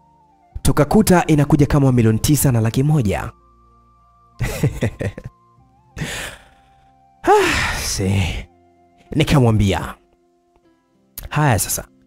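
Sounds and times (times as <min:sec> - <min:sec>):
soft background music: 0:00.0 - 0:12.0
person sighing: 0:06.0 - 0:08.5.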